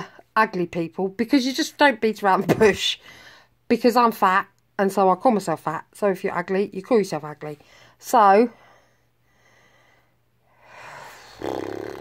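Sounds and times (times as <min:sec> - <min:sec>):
buzzing through pursed lips: 0:10.5 - 0:12.0.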